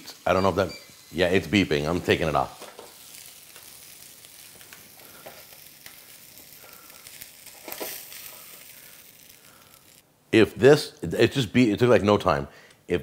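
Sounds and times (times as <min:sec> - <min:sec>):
fish sizzling on grill: 0:00.0 - 0:10.1.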